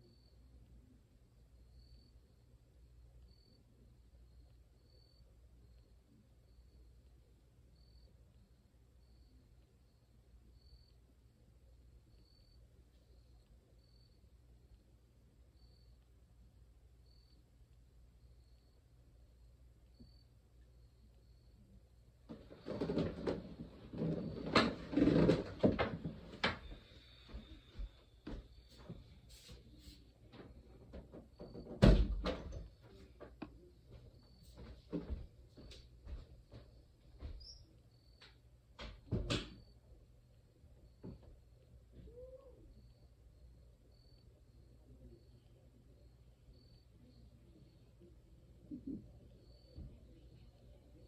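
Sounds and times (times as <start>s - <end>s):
household knocks and clicks: 22.3s - 26.7s
rustling: 22.3s - 27.8s.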